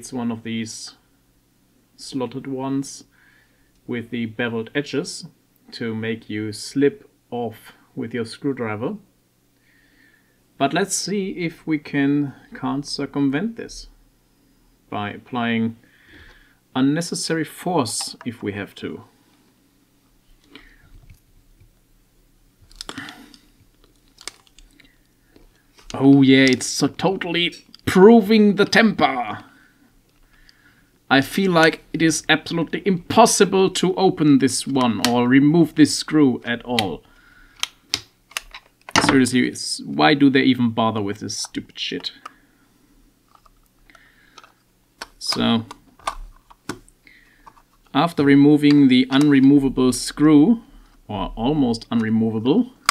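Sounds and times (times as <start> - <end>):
plastic housing clicking: 37.6 - 39.2, 43.3 - 47.8.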